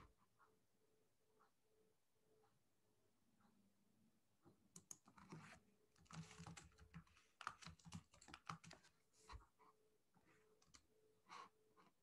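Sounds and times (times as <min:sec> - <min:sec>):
computer keyboard typing: 0:04.8 - 0:09.0, 0:10.6 - 0:10.8.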